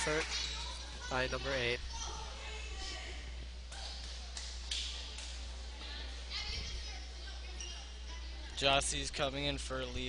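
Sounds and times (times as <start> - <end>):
distant voices in gymnasium: 0.0 - 10.0
steady low hum: 0.0 - 10.0.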